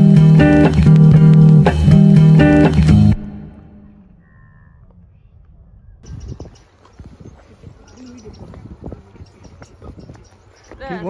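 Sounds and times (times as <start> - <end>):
bird calling: 3.8 - 11.0.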